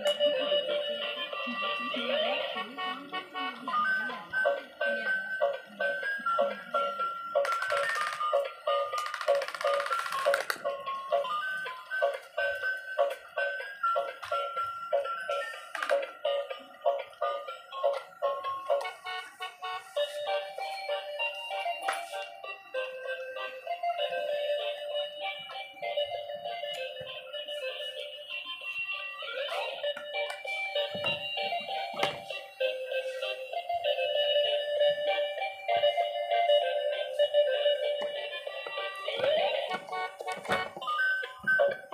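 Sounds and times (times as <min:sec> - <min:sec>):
tinny electronic toy melody: 0:00.0 - 0:41.9.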